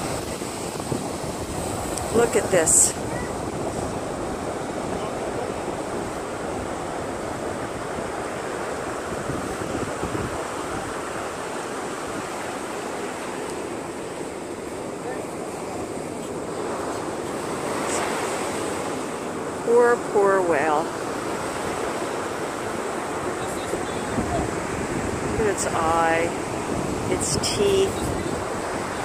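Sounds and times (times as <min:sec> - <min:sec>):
ocean surf breaking on beach: 0:00.0 - 0:29.0
wind on microphone: 0:00.0 - 0:29.0.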